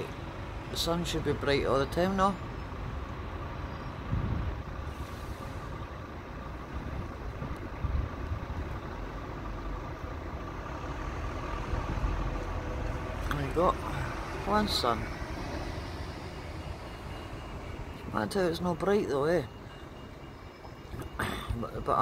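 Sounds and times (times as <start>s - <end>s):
low outdoor rumble: 0.0s - 22.0s.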